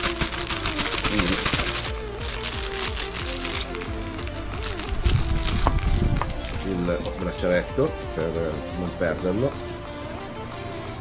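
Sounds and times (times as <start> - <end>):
plastic bag crinkling: 0.0 - 7.4
background music with melody: 0.0 - 11.0.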